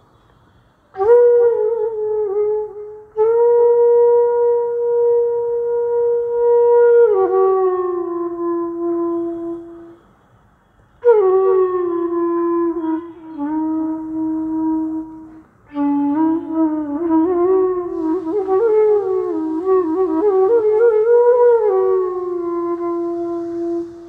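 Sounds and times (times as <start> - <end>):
solo flute playing: 0.0 - 24.0.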